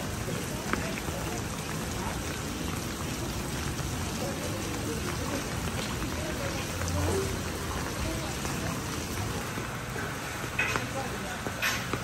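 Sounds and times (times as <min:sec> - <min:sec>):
rain on wet pavement: 0:00.0 - 0:12.0.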